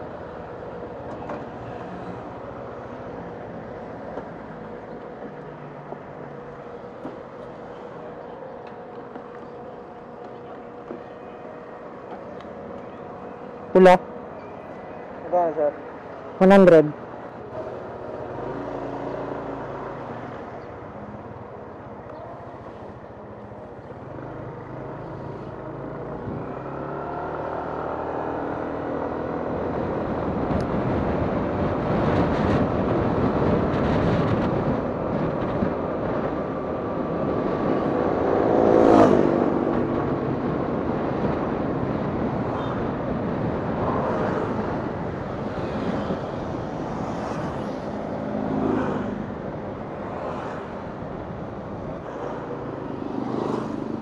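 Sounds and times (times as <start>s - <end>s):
wind on microphone: 29.4s - 48.4s.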